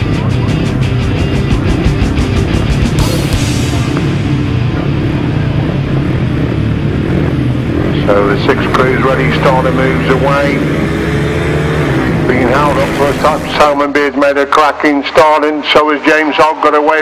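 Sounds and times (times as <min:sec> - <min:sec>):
intro music with fast beat: 0:00.0 - 0:07.9.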